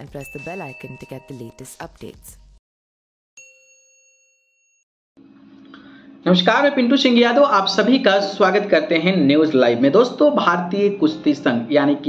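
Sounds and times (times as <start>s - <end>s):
bright chime ding: 0.0s - 1.6s, 3.4s - 4.4s.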